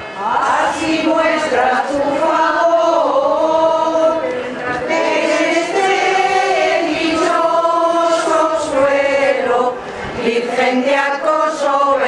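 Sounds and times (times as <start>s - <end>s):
crowd singing a hymn in unison: 0.0s - 12.0s.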